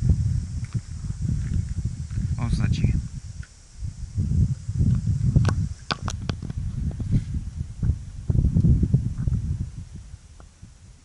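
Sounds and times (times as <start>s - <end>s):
microphone handling noise: 0.0s - 11.0s
wind rumble on microphone: 0.0s - 11.0s.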